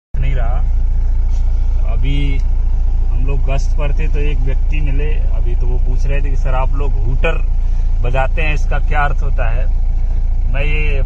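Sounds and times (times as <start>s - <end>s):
engine idling: 0.2s - 11.0s.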